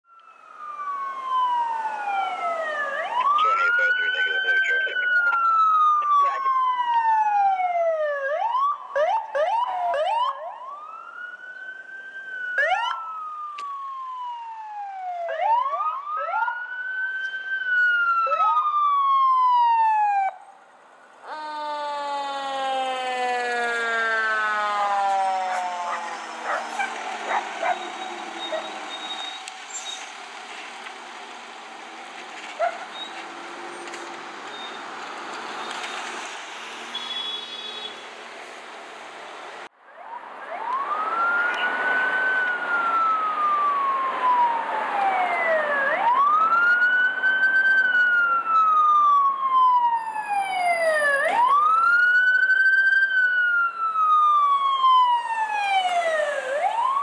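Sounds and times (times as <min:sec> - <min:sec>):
deep fire engine siren: 0:00.0 - 0:38.7, 0:39.6 - 0:57.0
ambulance wail siren: 0:00.0 - 0:57.0.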